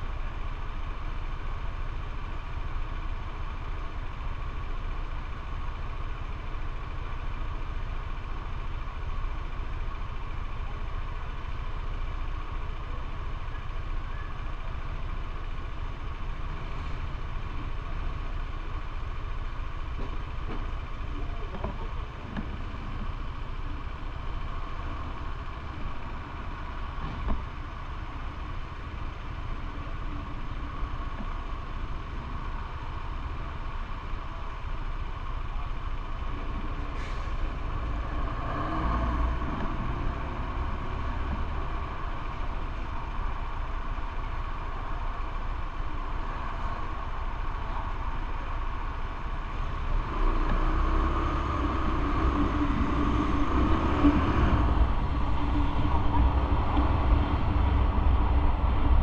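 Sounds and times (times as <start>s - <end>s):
vehicle engines idling: 0.0s - 59.0s.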